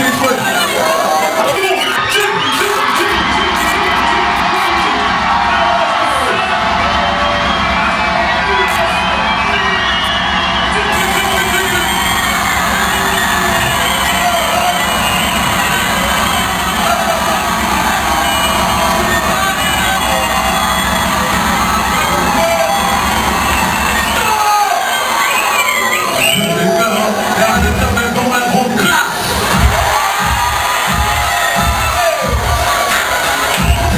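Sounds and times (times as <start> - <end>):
crowd cheering and shouting: 0.0 - 33.9
music with heavy bass beat: 10.9 - 24.2, 29.2 - 33.9.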